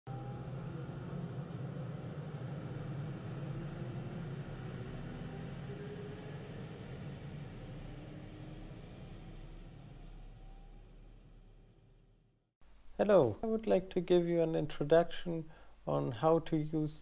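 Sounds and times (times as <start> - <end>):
aircraft engine drone: 0.1 - 11.7
faint rising whine: 0.1 - 13.3.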